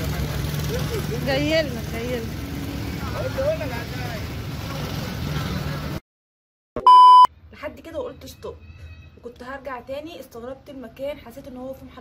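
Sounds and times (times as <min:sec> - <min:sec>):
traffic rumble: 0:00.0 - 0:06.0.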